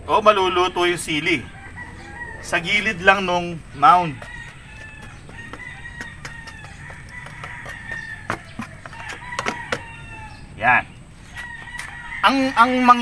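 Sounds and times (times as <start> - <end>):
rooster crowing: 0.2 - 13.0
chickens clucking: 0.4 - 13.0.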